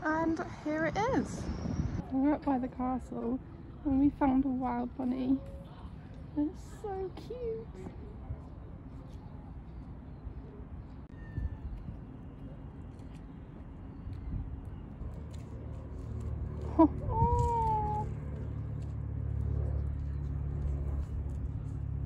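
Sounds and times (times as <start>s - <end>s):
road traffic rumble: 0.0s - 22.0s.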